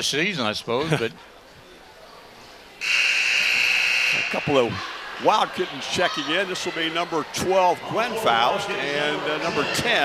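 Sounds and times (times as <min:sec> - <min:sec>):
high-pitched horn buzz: 0:02.8 - 0:04.7.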